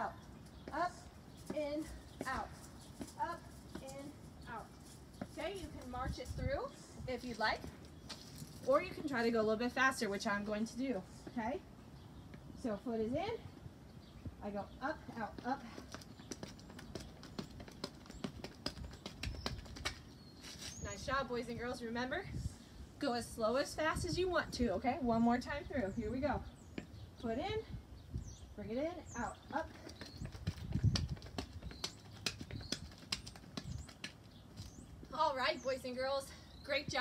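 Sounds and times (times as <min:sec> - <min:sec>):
sneakers tapping on concrete: 0:00.5 - 0:06.2, 0:15.1 - 0:20.7, 0:26.7 - 0:27.0, 0:29.4 - 0:35.1.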